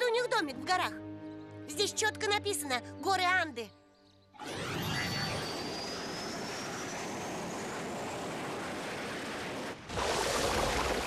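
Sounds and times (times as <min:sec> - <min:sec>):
thin whine rising in pitch: 0:04.4 - 0:08.8.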